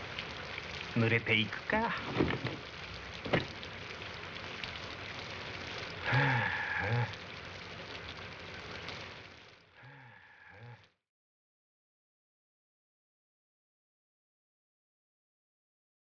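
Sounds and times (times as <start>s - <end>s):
steady rain falling: 0.0s - 11.0s
man making low voiced sounds: 6.0s - 7.2s.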